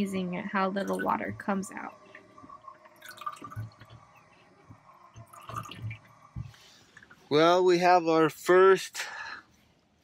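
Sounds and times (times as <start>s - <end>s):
water dripping into plastic jug: 0.6s - 7.3s.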